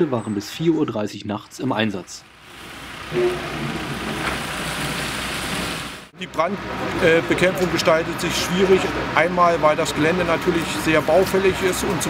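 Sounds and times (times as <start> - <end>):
low hum: 2.0 - 5.9.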